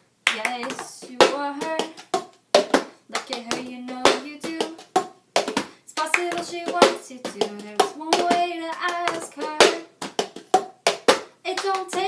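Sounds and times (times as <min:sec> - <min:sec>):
hand claps: 0:00.3 - 0:12.0.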